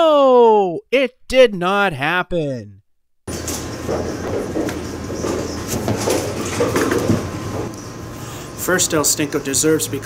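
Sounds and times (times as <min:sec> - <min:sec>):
bowling pins knocking: 0:03.3 - 0:07.9
bowling balls rolling on lanes: 0:03.3 - 0:08.1.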